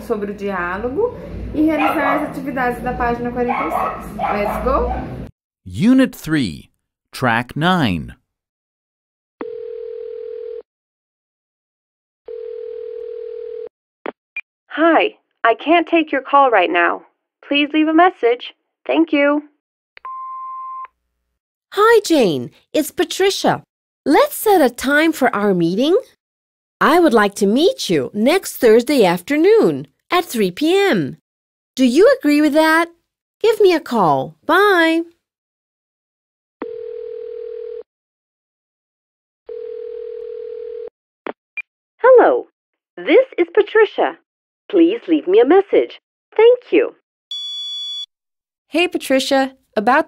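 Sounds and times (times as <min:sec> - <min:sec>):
telephone ringing tone: 0:09.4 - 0:10.6, 0:12.3 - 0:13.7, 0:36.6 - 0:37.9, 0:39.5 - 0:40.9.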